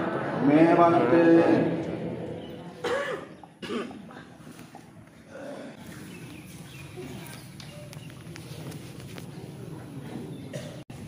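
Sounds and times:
person coughing: 0:02.8 - 0:04.2.

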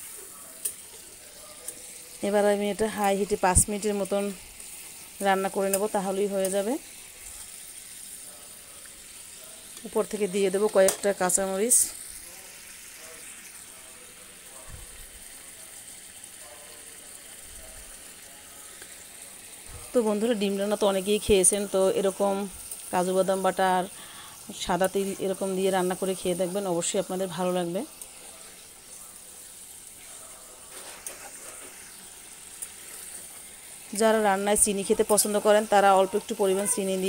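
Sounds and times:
gravy simmering in a pan: 0:00.0 - 0:37.0.

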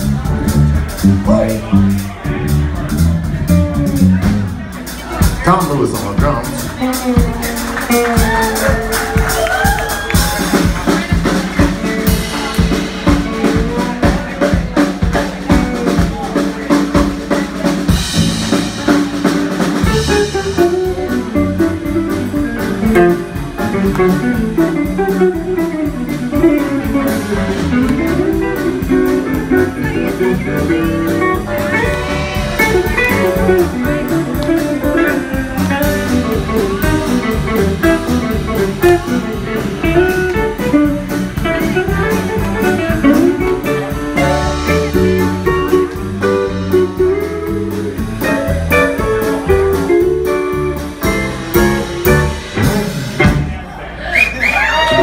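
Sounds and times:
drums: 0:00.0 - 0:55.0
electric bass: 0:00.0 - 0:55.0
electric guitars: 0:06.0 - 0:53.6.

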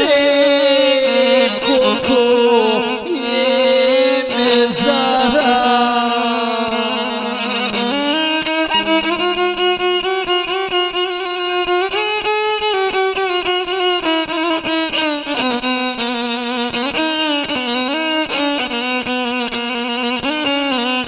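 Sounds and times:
violin melody with sliding notes: 0:00.0 - 0:21.0.

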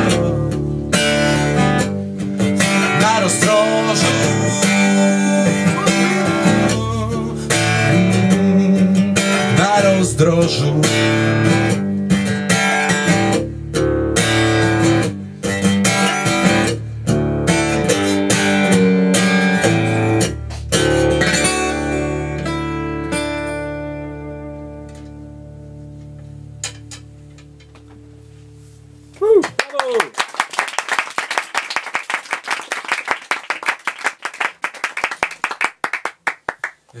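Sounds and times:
acoustic guitar strumming: 0:00.0 - 0:29.1
audience applause: 0:29.3 - 0:36.8.

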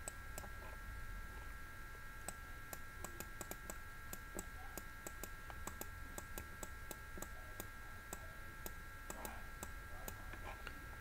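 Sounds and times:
faint electrical whine and hum: 0:00.0 - 0:11.0.

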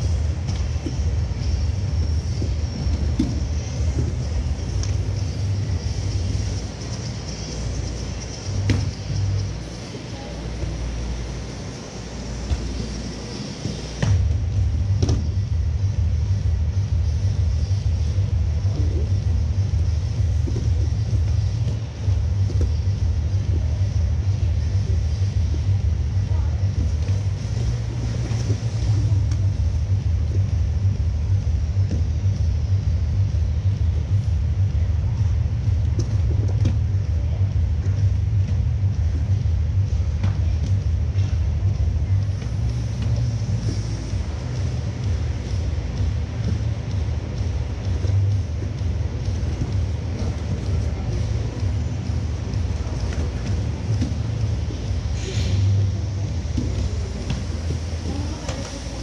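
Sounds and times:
voices: 0:00.0 - 0:15.5, 0:17.0 - 0:31.0, 0:34.6 - 0:59.0
faint music: 0:00.0 - 0:59.0
loud low rumble: 0:14.0 - 0:59.0.

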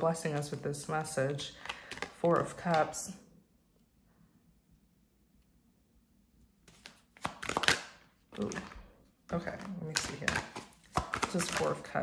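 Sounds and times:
cards rustling and slapping: 0:00.0 - 0:03.0, 0:06.6 - 0:12.0.

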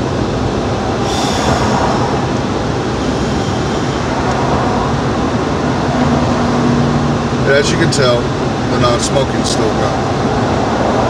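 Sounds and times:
road and engine noise in car: 0:00.0 - 0:11.0.

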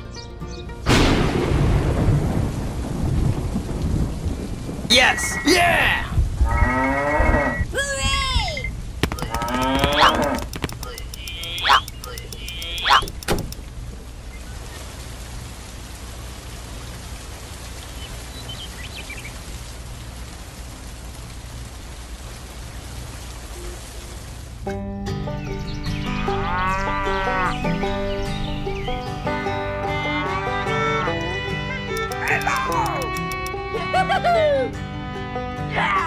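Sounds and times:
rain hiss: 0:00.9 - 0:06.6, 0:07.4 - 0:24.8, 0:25.4 - 0:34.5
voice-like sliding calls: 0:09.2 - 0:13.2.

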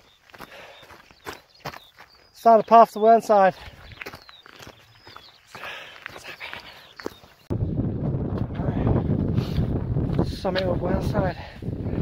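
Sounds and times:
footsteps crunching on gravel: 0:00.0 - 0:07.5
wind buffeting microphone: 0:07.2 - 0:12.0.

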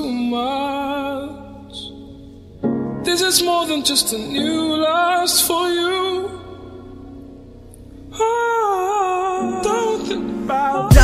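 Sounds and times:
soft sustained backing music: 0:00.0 - 0:11.0.

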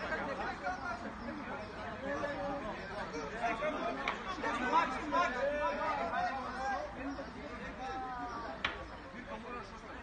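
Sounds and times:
group of people chattering: 0:00.0 - 0:10.0.

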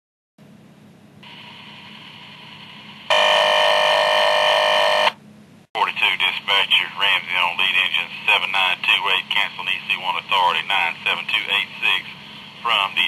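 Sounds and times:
loud steady electronic tone: 0:02.7 - 0:05.2
radio hiss: 0:05.8 - 0:13.0.

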